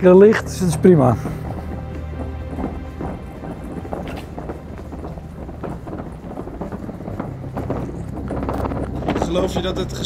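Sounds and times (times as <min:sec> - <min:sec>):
wheelie bin wheels rattling on paving: 0:00.0 - 0:10.0.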